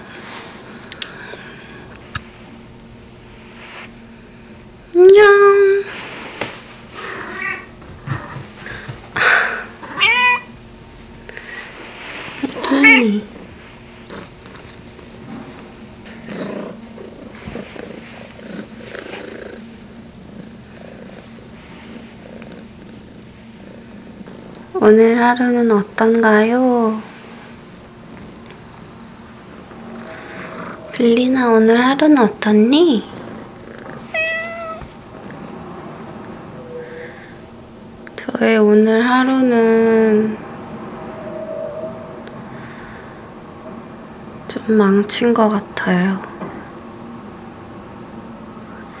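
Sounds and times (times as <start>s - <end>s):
cat meowing: 7.2s - 7.7s, 9.9s - 10.6s, 12.8s - 13.2s, 34.1s - 34.8s
cat purring: 12.1s - 24.8s, 26.9s - 35.5s.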